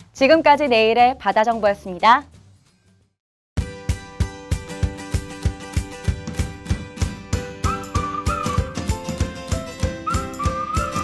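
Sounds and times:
sliding whistle-like melody: 7.6s - 11.0s.

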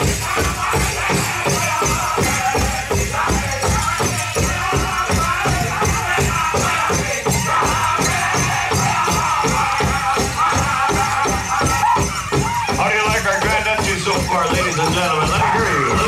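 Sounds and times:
group singing: 0.0s - 16.0s
steady unison drumbeat: 0.0s - 16.0s.

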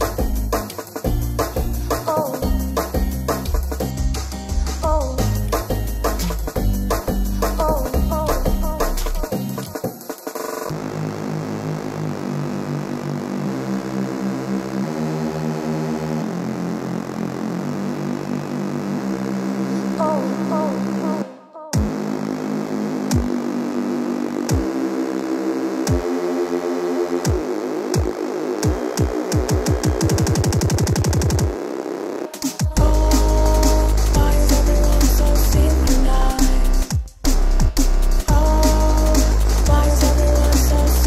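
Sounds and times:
drum and bass music: 0.0s - 13.9s, 14.6s - 21.2s, 21.8s - 41.0s
sustained synthesizer chords: 10.7s - 19.9s.

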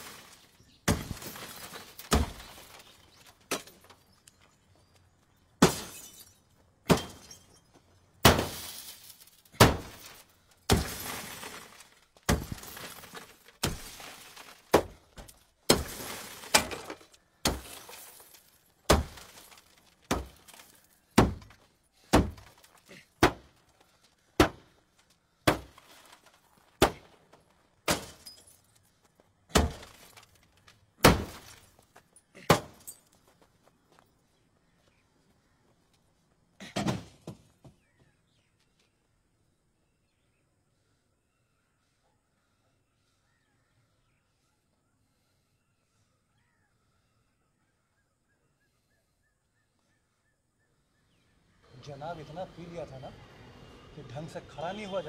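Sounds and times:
glass breaking: 0.0s - 2.9s, 5.6s - 7.6s, 8.2s - 14.8s, 15.7s - 21.4s, 27.9s - 28.7s
metal rod smashing car: 8.2s - 14.9s.

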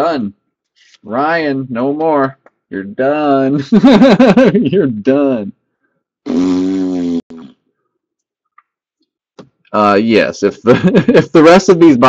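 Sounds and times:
man making buzzing vocal sound: 6.3s - 7.5s.

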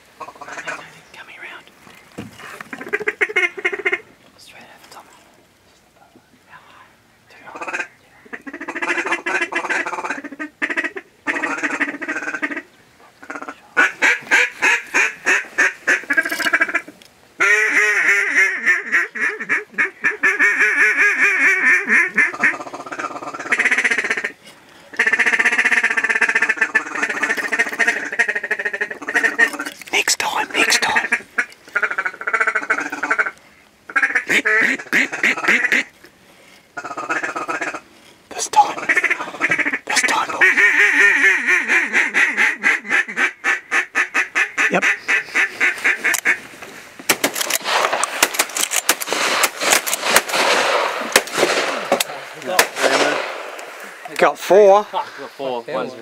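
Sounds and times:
duck call quacks and chatter: 0.2s - 0.9s, 2.7s - 4.0s, 7.5s - 36.0s, 36.8s - 46.4s.

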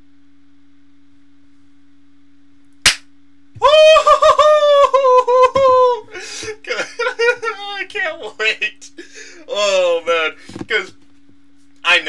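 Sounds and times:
faint steady hum: 0.0s - 12.0s
sharp snap: 2.8s - 3.1s
man's high-pitched cry: 3.6s - 6.1s.

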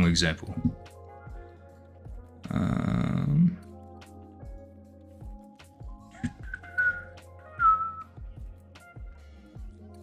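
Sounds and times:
background music with steady beat: 0.0s - 10.0s
person whistling: 6.4s - 8.2s.

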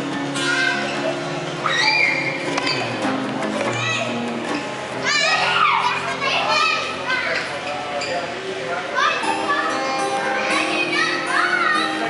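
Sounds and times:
acoustic guitar playing: 0.0s - 12.0s
children calling and chattering: 0.0s - 12.0s.

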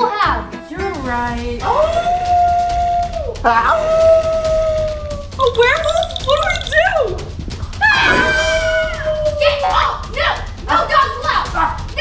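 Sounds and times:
people shrieking in fright: 7.8s - 9.8s.

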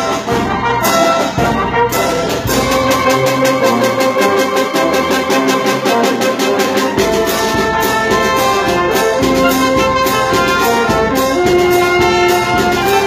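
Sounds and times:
low brass: 0.0s - 13.0s
trumpets and trombones melody: 0.0s - 13.0s
bass drum beat: 7.4s - 13.0s.

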